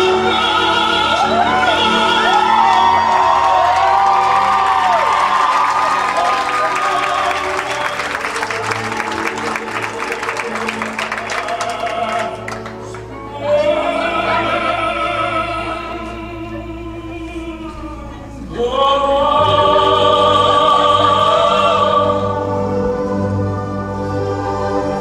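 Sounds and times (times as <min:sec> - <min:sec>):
woman singing opera: 0:00.0 - 0:04.1, 0:13.2 - 0:22.7
audience clapping and cheering: 0:00.0 - 0:13.2
orchestral accompaniment: 0:00.0 - 0:17.7, 0:18.4 - 0:25.0.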